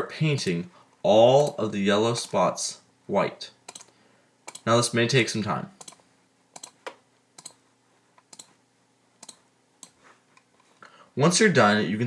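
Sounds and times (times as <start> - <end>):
computer mouse clicking: 3.7 - 3.9, 4.5 - 4.7, 5.8 - 6.0, 6.6 - 7.6, 8.2 - 8.6, 9.2 - 10.7.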